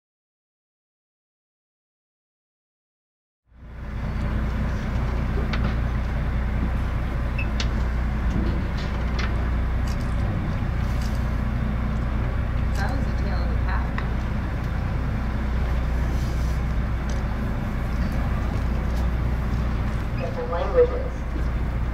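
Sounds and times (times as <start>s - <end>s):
boat engine humming: 3.5s - 21.9s
faint voices: 16.0s - 21.9s.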